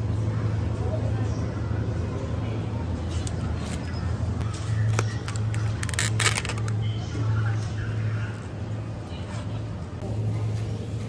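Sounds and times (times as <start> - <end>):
steady low hum: 0.0 - 11.0
plastic basket clicks and crinkles: 4.8 - 6.8.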